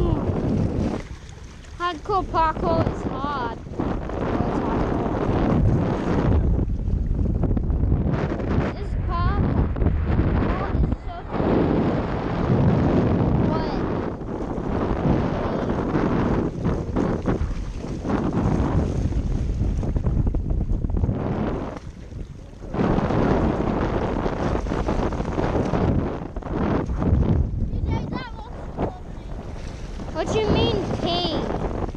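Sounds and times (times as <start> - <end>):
wind buffeting microphone: 0.0 - 31.9.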